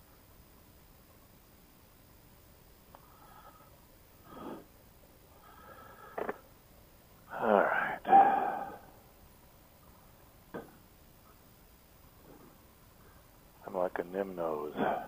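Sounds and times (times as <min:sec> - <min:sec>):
man groaning and sighing: 0:07.3 - 0:08.9, 0:14.7 - 0:15.0.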